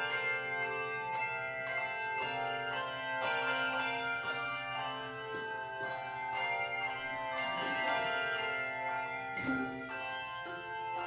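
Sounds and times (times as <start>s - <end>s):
handbell choir playing: 0.0s - 11.0s.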